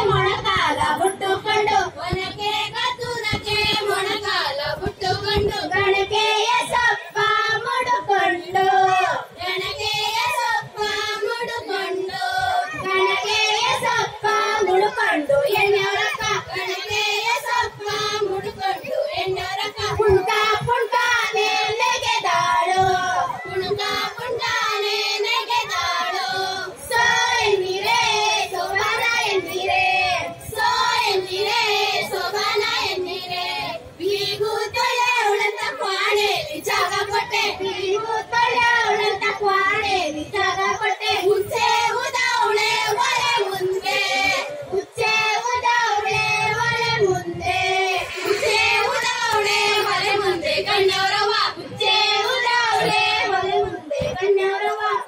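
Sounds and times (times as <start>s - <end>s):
women singing folk song together: 0.0s - 55.0s.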